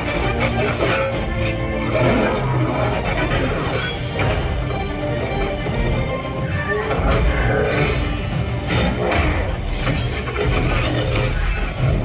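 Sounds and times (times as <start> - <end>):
action film score over speakers: 0.0 - 12.0.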